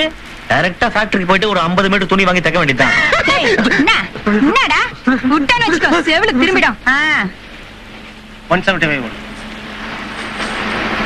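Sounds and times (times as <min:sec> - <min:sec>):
bus engine humming: 0:00.0 - 0:11.0
road noise rushing: 0:07.5 - 0:11.0.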